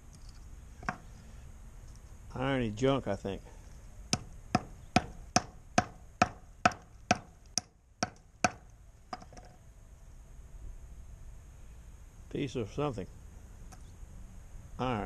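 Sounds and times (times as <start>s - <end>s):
hammer striking iron: 4.1s - 9.5s.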